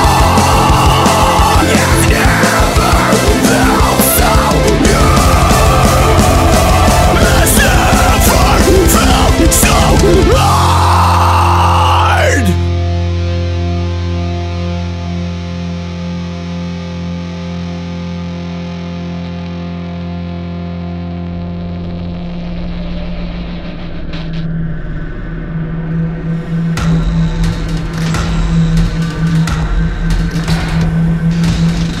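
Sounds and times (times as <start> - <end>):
distorted electric guitar chord: 0.0 - 25.1
heavy rock music: 0.0 - 32.0.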